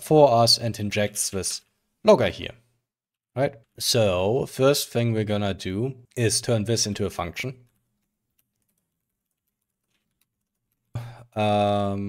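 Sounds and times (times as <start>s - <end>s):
faint keyboard keystrokes: 7.6s - 11.0s.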